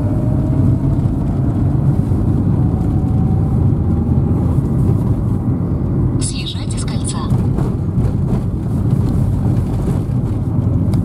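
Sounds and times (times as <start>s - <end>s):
car engine and tyres rumble: 0.0s - 11.0s.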